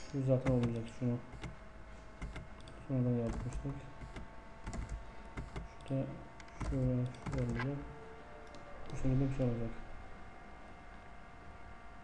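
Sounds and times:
computer keyboard keystrokes: 0.4s - 1.6s, 2.2s - 7.7s.

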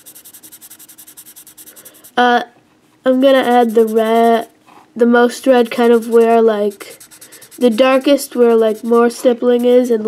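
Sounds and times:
pencil shading on paper: 0.0s - 2.2s, 3.2s - 4.5s, 5.6s - 10.0s.

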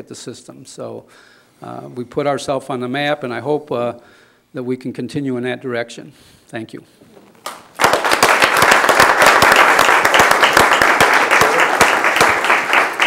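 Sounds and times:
crowd applauding: 7.4s - 13.0s.

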